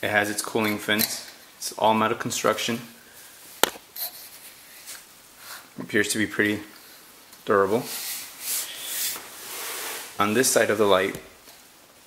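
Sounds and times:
metal rubbing against cardboard: 7.8 - 10.5.

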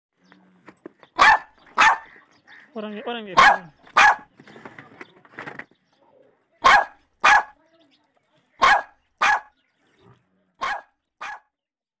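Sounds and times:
dog barking: 1.2 - 2.2, 3.3 - 4.3, 6.6 - 7.6, 8.6 - 9.6, 10.6 - 11.6.

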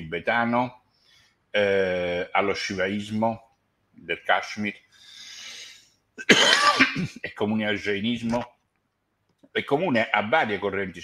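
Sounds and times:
man breathing softly: 4.9 - 6.0
man coughing: 6.2 - 7.3.

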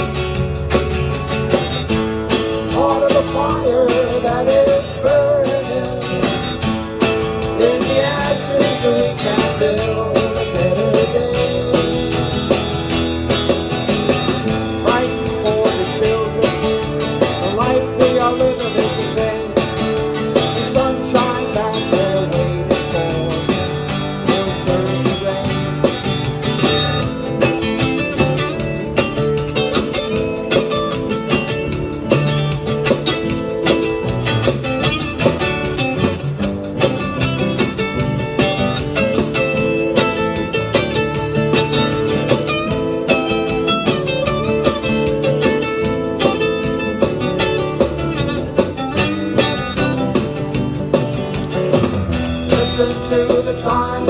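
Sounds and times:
acoustic guitars strumming: 0.0 - 54.0.

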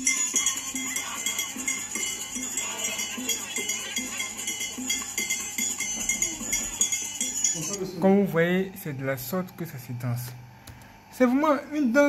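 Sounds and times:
fast metallic percussion: 0.0 - 8.0
jangling bells or shakers: 0.0 - 8.0.

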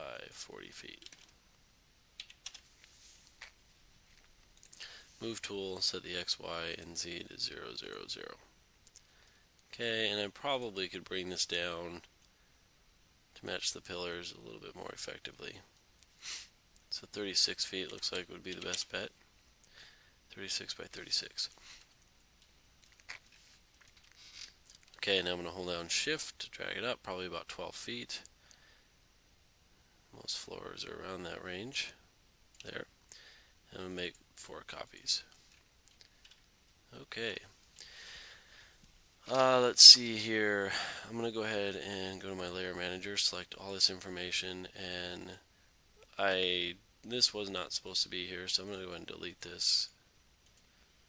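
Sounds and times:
computer keyboard typing: 0.9 - 1.4, 2.2 - 2.6.

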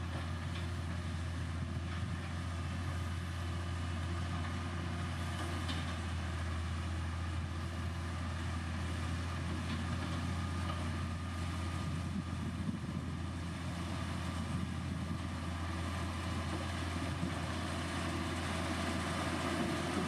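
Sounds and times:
diesel engine running: 0.0 - 20.0.

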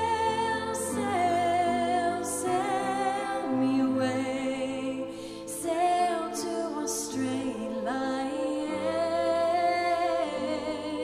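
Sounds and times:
slow orchestral music: 0.0 - 11.0.

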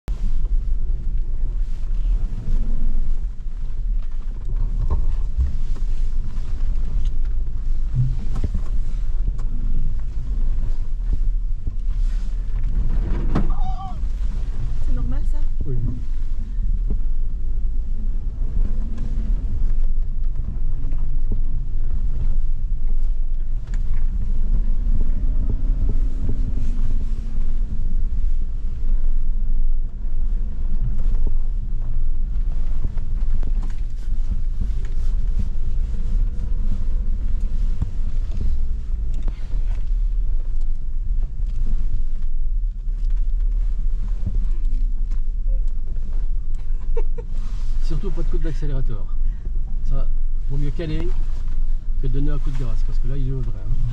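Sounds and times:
car engine crawling: 0.0 - 53.9
knocks and bumps: 3.9 - 10.6.

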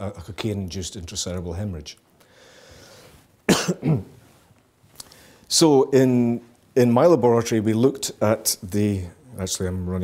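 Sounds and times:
man coughing: 3.5 - 4.2.

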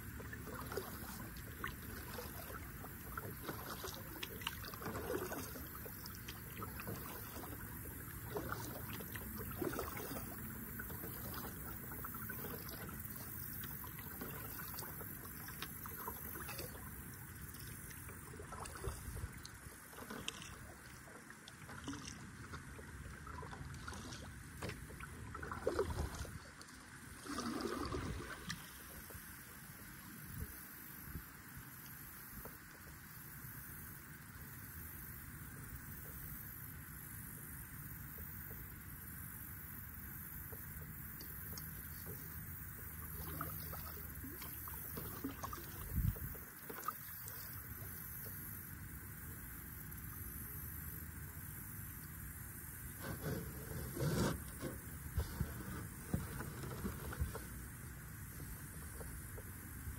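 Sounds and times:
splashes and bumps: 0.0 - 20.9, 27.2 - 29.0
water lapping against kayak hull: 0.0 - 59.9.

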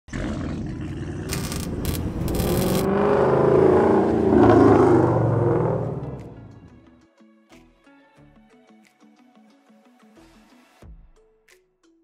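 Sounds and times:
car engine revving: 1.3 - 6.7.

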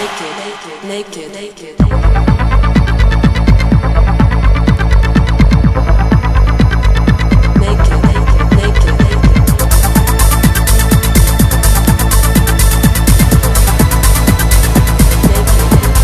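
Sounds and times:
heavy bass drone: 0.0 - 16.0
fast kick drum: 1.8 - 16.0.

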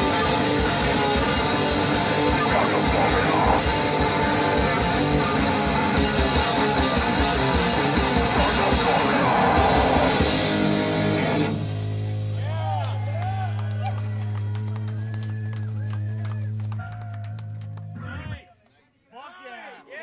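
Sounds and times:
live heavy metal band: 0.0 - 12.6
audience whooping and shouting: 7.8 - 10.8, 12.4 - 17.5
audience clapping: 12.6 - 18.8.

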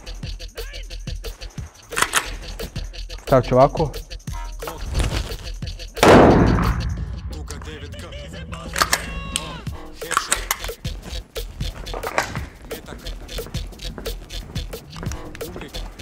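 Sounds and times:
hip hop music: 0.0 - 16.0
loud echoing pistol shot: 6.0 - 7.6.

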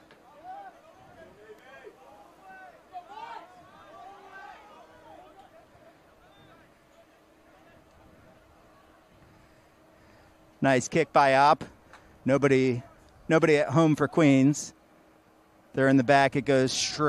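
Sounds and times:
faint steady hum: 0.0 - 17.0
faint shouts and calls: 0.2 - 10.2.

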